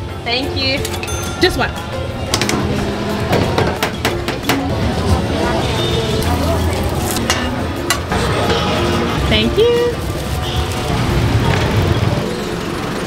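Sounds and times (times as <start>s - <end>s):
traffic rumble: 1.3s - 13.0s.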